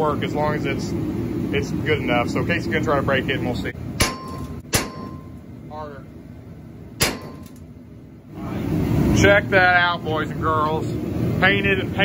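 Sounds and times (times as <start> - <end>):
sharp metal bang with ring: 4.0 - 5.4, 7.0 - 7.5.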